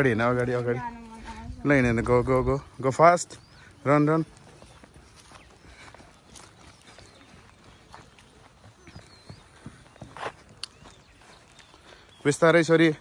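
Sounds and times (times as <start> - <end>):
footsteps on grass: 0.0 - 13.0.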